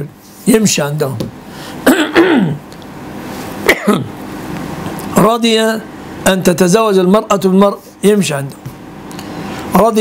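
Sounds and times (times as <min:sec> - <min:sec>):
man speaking: 0:00.0 - 0:01.3, 0:05.1 - 0:08.6, 0:09.7 - 0:10.0
man clearing his throat: 0:01.8 - 0:02.6, 0:03.6 - 0:04.2.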